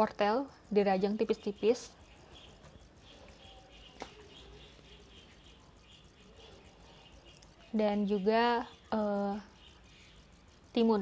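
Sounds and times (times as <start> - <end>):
bird chirping: 0.8 - 11.0.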